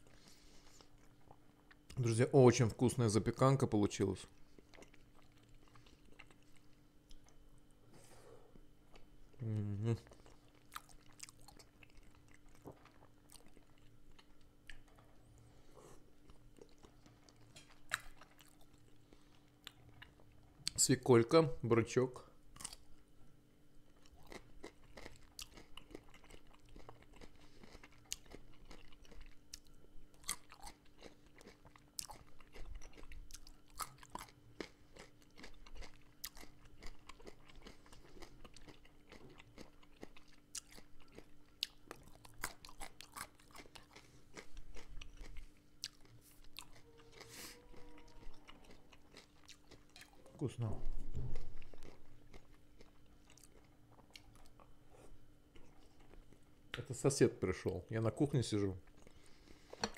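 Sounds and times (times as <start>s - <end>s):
chewing and crunching vegetables: 0.0s - 7.8s, 8.6s - 59.9s.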